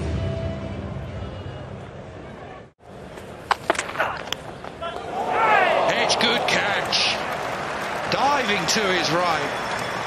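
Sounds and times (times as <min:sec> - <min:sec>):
crowd cheering: 0:03.8 - 0:10.0
fielders shouting: 0:03.8 - 0:10.0.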